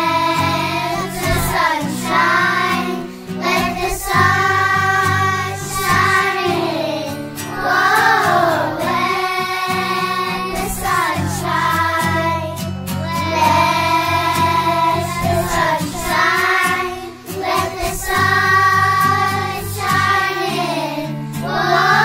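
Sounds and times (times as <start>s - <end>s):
children singing: 0.0s - 22.0s
strummed acoustic guitar: 0.0s - 22.0s.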